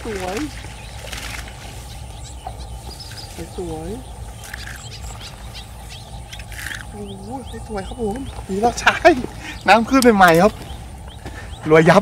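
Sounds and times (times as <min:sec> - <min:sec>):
rustle on grassy bank: 0:00.0 - 0:07.4
small birds chirping: 0:00.0 - 0:12.0.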